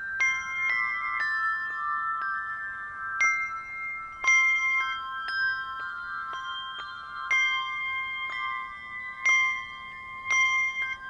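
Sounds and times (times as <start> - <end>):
handbells ringing: 0.0 - 11.0.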